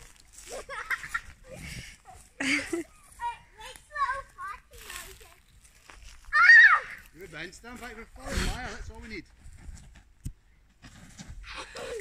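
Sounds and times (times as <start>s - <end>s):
children's high-pitched calls: 6.2s - 7.1s
child squealing: 6.3s - 7.0s.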